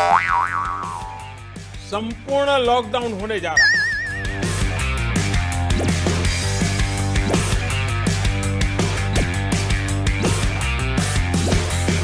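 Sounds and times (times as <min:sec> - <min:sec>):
background music: 0:00.6 - 0:12.0
swooping ringing tone: 0:03.6 - 0:04.9.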